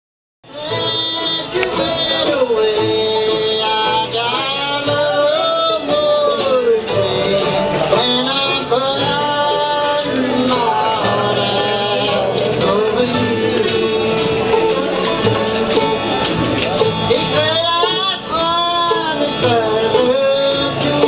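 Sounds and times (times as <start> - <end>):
bluegrass band playing: 0.4 - 21.0
man singing: 0.4 - 21.0.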